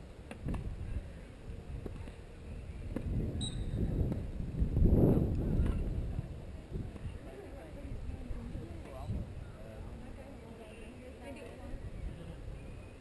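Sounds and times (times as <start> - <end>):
wind buffeting microphone: 2.6 - 10.3, 11.5 - 13.0.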